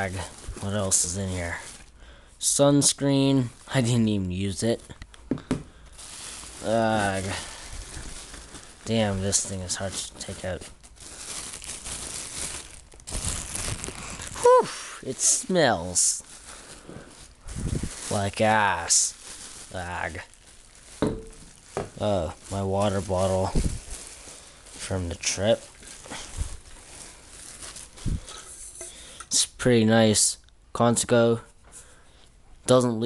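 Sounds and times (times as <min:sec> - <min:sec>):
plastic bag crinkling: 0:00.0 - 0:04.9, 0:05.7 - 0:29.2.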